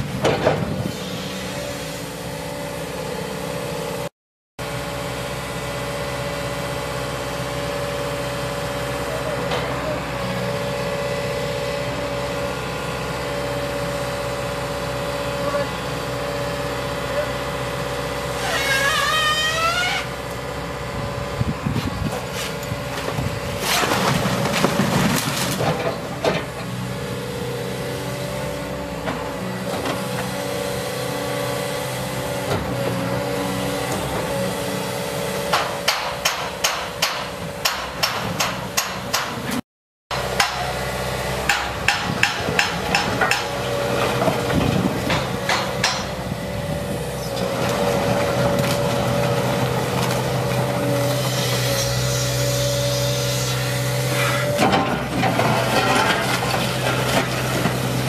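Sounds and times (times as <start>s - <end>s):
excavator diesel engine running: 0.0s - 18.5s, 19.5s - 58.0s
knocks and clatters of rubble: 22.1s - 26.7s, 54.5s - 58.0s.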